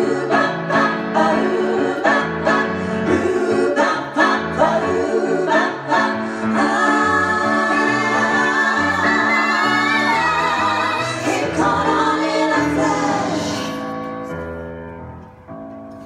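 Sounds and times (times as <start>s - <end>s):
women singing in harmony: 0.0s - 13.9s.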